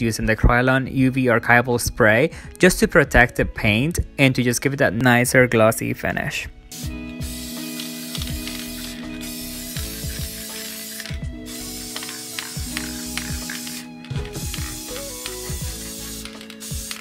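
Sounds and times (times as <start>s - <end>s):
aerosol spray can hissing: 6.7s - 17.0s.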